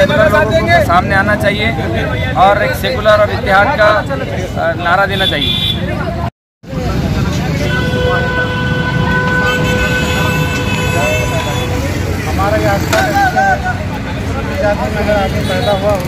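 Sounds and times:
crowd chatter: 0.0s - 16.0s
street traffic noise: 0.0s - 16.0s
vehicle horn blast: 7.6s - 11.8s.

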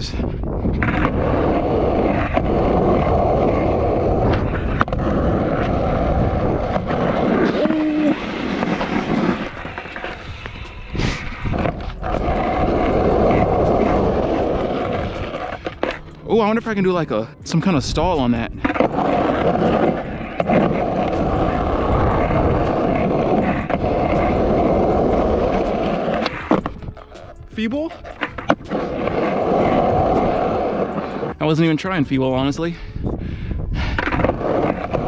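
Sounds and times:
skateboard wheels rolling on concrete: 0.0s - 35.0s
skateboard clacking on concrete: 18.2s - 31.4s.

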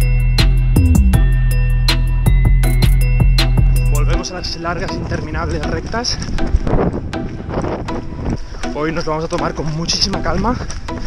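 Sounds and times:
wind buffeting microphone: 4.1s - 11.0s.

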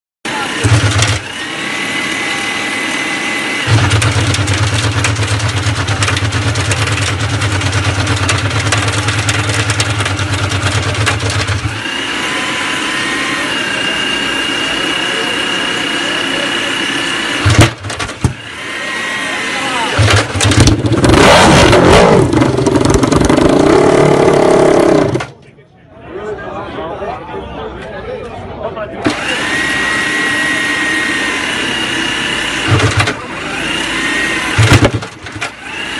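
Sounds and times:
motorcycle engine revving: 0.3s - 25.4s, 29.0s - 35.9s
roller starter drone: 0.3s - 25.4s, 29.0s - 35.9s.

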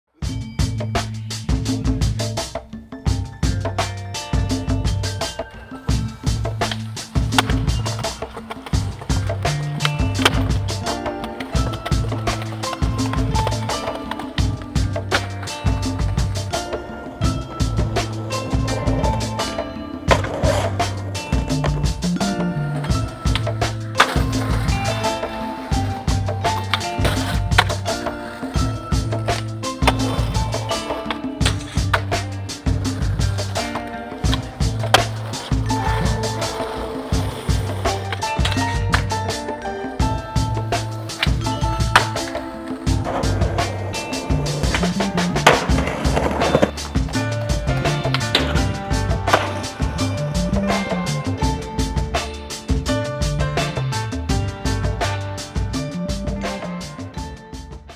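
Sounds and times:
music with bass line: 0.1s - 57.9s
skateboard clack on concrete: 5.3s - 51.6s
skateboard knocks: 6.4s - 50.1s.

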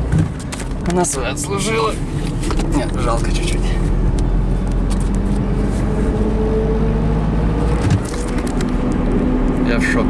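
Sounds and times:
car engine: 0.0s - 10.0s
road noise inside car: 0.0s - 10.0s.

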